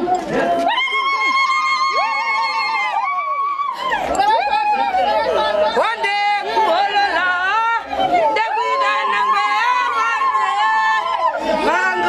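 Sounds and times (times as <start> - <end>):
women calling out and singing: 4.1 - 12.0.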